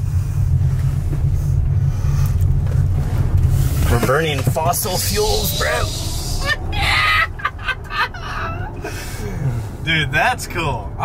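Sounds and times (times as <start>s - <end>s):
tyre and road noise: 0.0s - 11.0s
men laughing hard: 6.0s - 9.6s.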